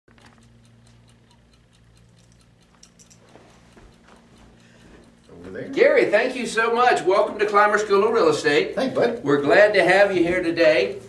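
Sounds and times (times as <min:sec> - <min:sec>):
light rapid ticking: 0:00.1 - 0:11.0.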